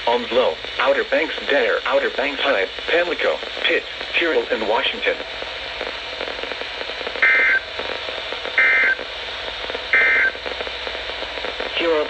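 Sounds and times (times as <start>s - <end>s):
radio hiss: 0.0s - 12.0s.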